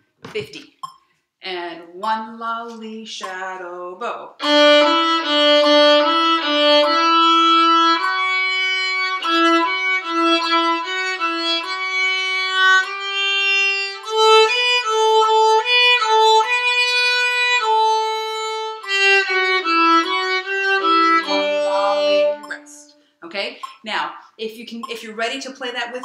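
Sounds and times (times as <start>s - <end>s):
violin playing short bowed notes: 4.4s - 22.9s.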